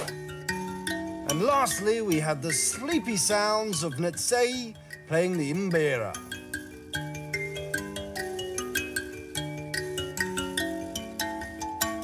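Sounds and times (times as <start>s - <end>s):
mbira notes plucked: 0.0s - 12.0s.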